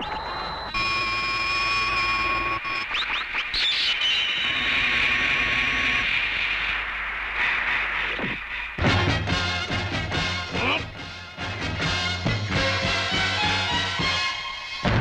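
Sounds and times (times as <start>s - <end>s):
high electronic tone: 0.0s - 6.1s
steady hiss: 4.2s - 8.8s.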